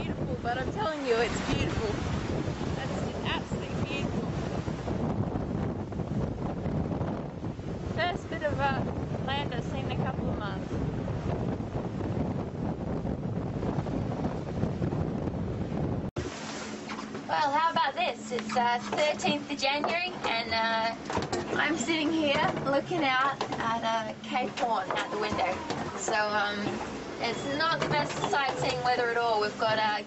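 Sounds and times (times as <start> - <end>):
rough sea rushing: 0.0 - 30.0
wind buffeting microphone: 0.0 - 30.0.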